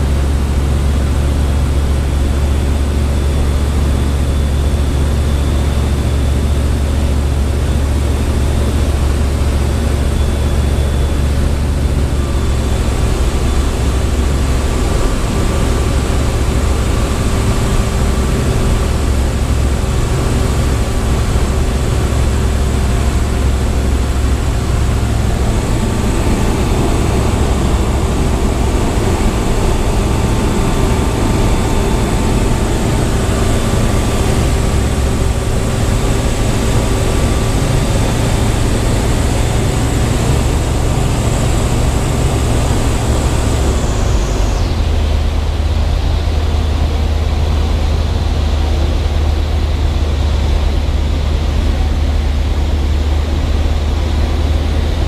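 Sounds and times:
aircraft engine and propeller: 0.0 - 55.0
wind rushing: 20.2 - 39.4.

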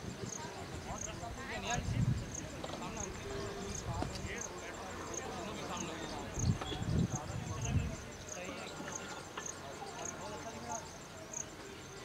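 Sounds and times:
distant people talking: 0.0 - 12.0.

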